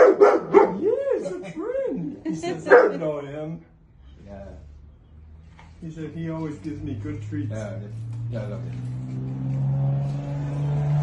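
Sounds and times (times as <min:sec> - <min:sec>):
vehicle engine speeding up: 0:04.6 - 0:11.0.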